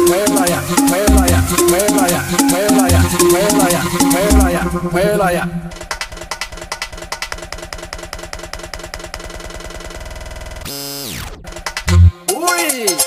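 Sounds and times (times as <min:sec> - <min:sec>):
electronic dance music: 0:00.0 - 0:07.3, 0:10.7 - 0:13.0
falling synth sweep: 0:00.2 - 0:06.3.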